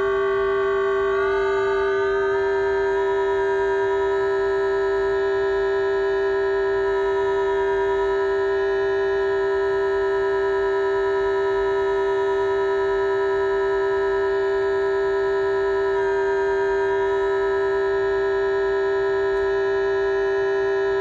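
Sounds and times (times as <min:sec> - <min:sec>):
held electronic keyboard note: 0:00.0 - 0:21.0.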